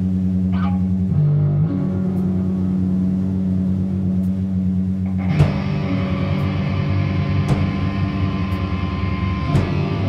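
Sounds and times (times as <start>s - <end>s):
distorted electric guitar: 0.0s - 10.0s
cymbal hits: 4.1s - 10.0s
punk band playing: 5.0s - 10.0s.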